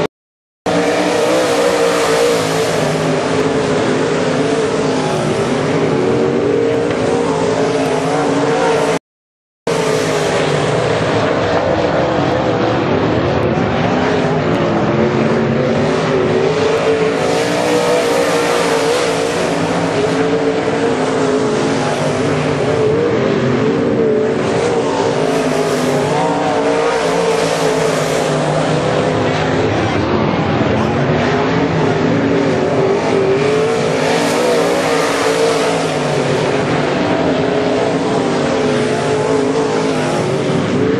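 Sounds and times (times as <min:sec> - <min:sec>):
race car engines droning: 0:00.7 - 0:09.0, 0:09.7 - 0:40.9.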